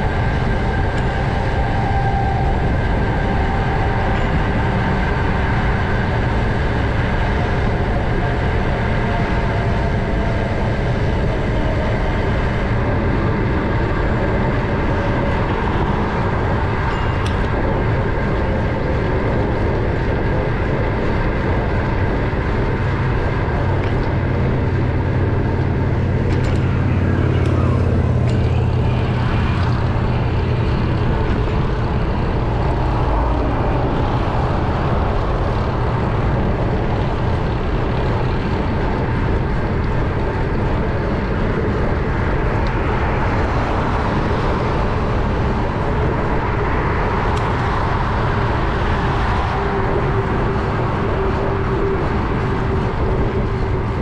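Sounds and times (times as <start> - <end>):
passing cars: 0.0 - 54.0
wind on camera microphone: 0.0 - 54.0.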